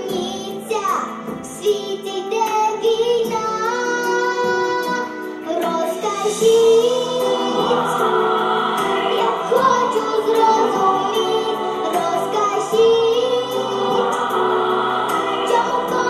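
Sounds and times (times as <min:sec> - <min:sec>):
backing music: 0:00.0 - 0:16.0
girl singing into microphone: 0:00.0 - 0:16.0.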